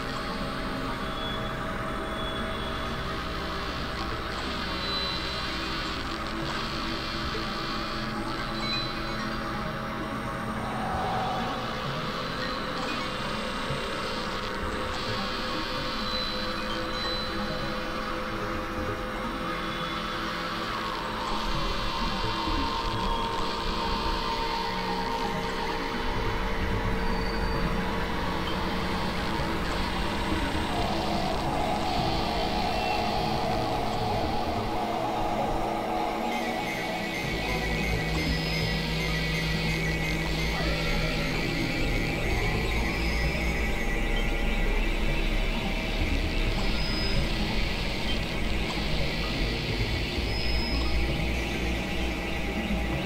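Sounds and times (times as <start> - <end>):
electronic drone music: 10.2 - 12.7, 27.6 - 41.0
low hum: 10.4 - 12.8.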